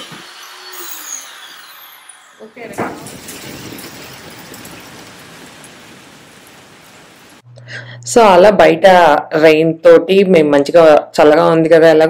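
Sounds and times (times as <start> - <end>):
heavy rain falling: 2.6 - 7.4.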